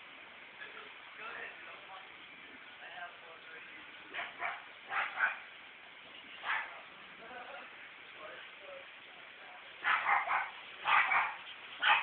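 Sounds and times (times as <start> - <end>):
dog yipping: 4.1 - 5.4, 6.4 - 6.8, 9.8 - 12.0.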